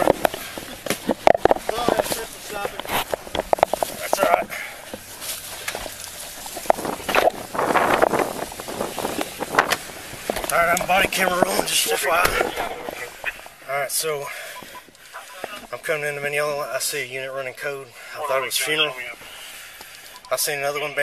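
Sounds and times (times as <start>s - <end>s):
plastic bags rustling: 0.0s - 13.7s
indistinct voices: 0.0s - 21.0s.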